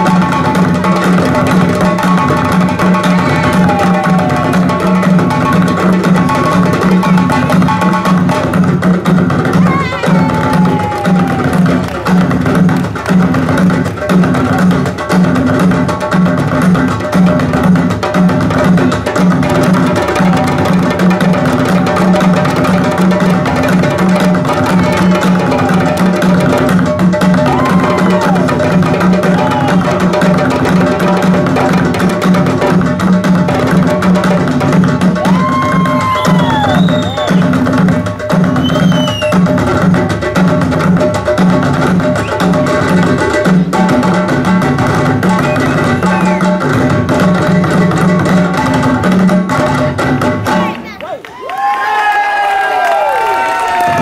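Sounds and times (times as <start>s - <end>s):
drum-driven music: 0.0s - 54.0s.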